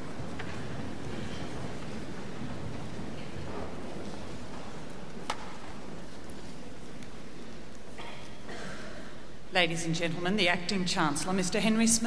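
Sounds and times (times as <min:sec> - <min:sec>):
rustling hubbub of audience: 0:00.0 - 0:10.2.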